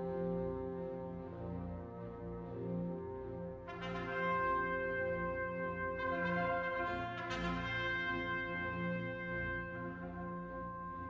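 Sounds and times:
orchestra with prominent horns: 0.0 - 11.0.

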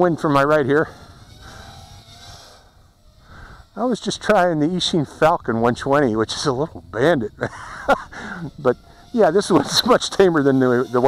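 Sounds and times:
wind rumble on microphone: 0.0 - 10.2
quadcopter whirring: 0.0 - 11.0.

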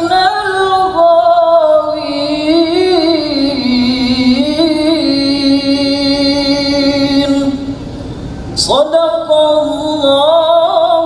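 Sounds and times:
man reciting melodically: 0.0 - 7.7, 8.6 - 11.0.

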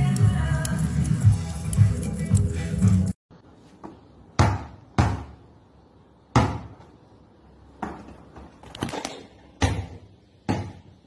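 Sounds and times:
basketball bouncing on hard floor: 3.8 - 5.4, 6.3 - 6.9, 7.8 - 10.9.

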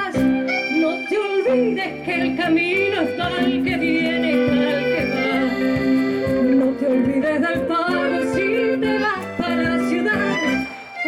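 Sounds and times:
bass guitar: 0.0 - 10.8
acoustic guitar: 0.0 - 11.0
cajon drum: 0.0 - 11.0
flute: 0.0 - 11.0
woman singing into a microphone: 0.0 - 11.0.

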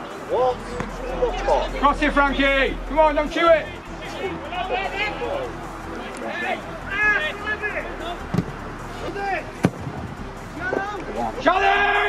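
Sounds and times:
people shouting outdoors: 0.0 - 9.6, 10.5 - 12.0.

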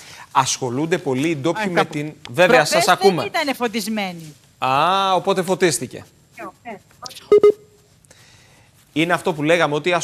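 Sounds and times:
short electronic beeps: 7.1 - 7.7.

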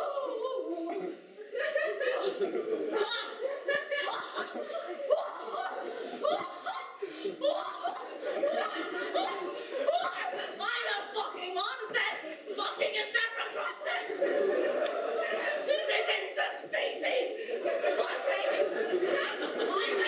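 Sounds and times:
audience laughing: 0.0 - 10.7, 12.2 - 20.0.

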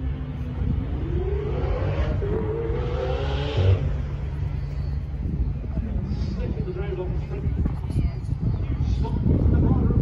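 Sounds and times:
car engine rising pitch: 0.5 - 4.7.

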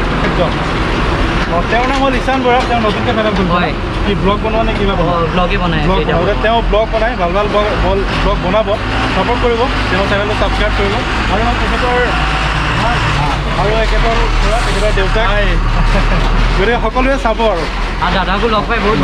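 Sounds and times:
people talking: 0.0 - 0.7, 1.4 - 19.0
truck engine rumble: 0.0 - 19.0.

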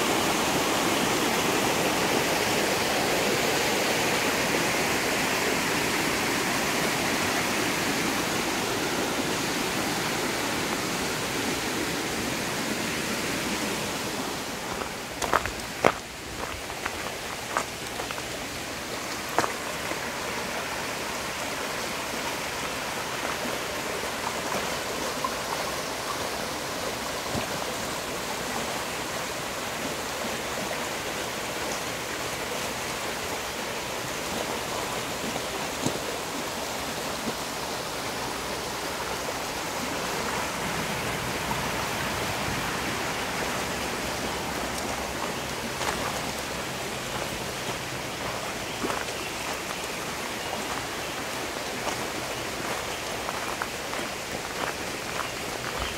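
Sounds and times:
creek water rushing over stones: 0.0 - 55.9.

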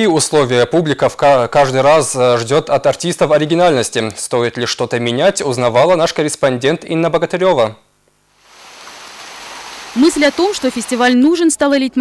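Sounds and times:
fountain water splashing: 8.4 - 11.2.

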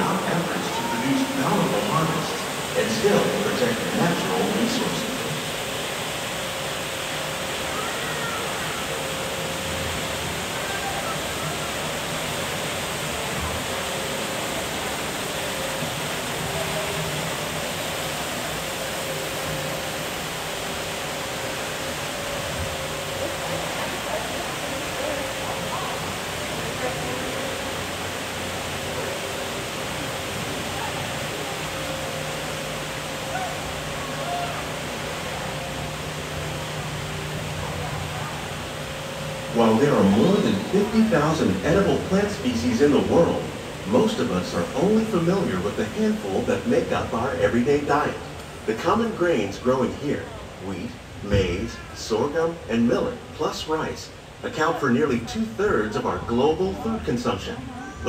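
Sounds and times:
steady rushing noise: 0.0 - 57.5
faint low hum: 0.0 - 58.0
faint voices murmuring: 0.0 - 58.0.

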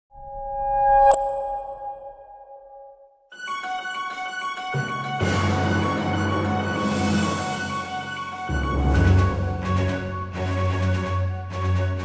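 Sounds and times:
intro theme music: 3.4 - 12.0.

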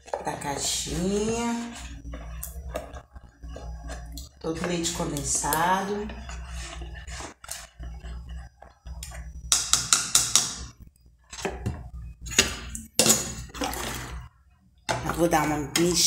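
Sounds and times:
metal spoon scraping a pot: 0.0 - 11.6.

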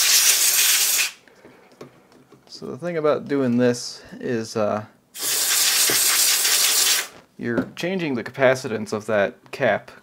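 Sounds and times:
aerosol spray hissing: 0.0 - 1.2, 5.2 - 7.2.

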